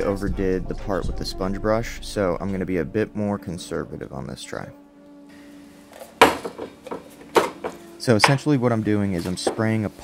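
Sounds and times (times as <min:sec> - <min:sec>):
objects knocking on wooden workbench: 0:06.0 - 0:07.8.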